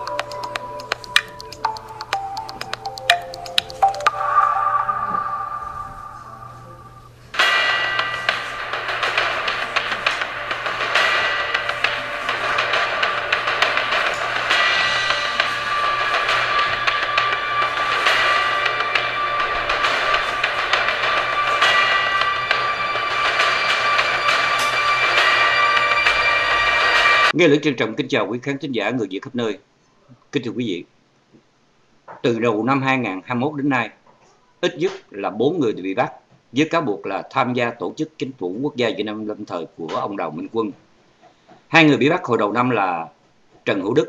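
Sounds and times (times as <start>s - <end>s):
news theme music with drums: 0.0s - 6.1s, 7.4s - 27.4s
station ident chime: 0.0s - 27.3s.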